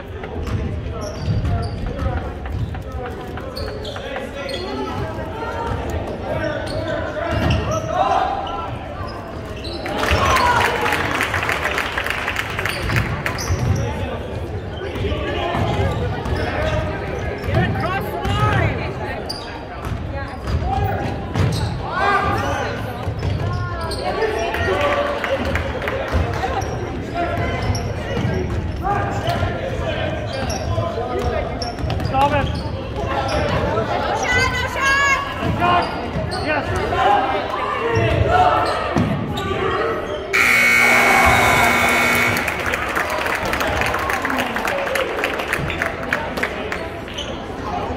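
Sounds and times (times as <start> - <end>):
voices echoing in gym: 0.0 - 47.9
scoreboard horn: 40.4 - 43.0.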